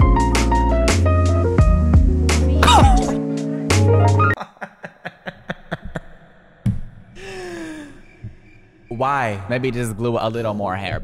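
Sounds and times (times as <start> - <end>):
person exhaling breathily: 7.2 - 8.1.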